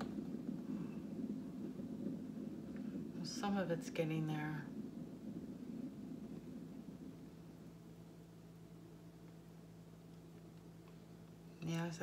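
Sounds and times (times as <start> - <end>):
faint steady hum: 0.0 - 12.0
turntable spinning rumble: 0.0 - 12.0.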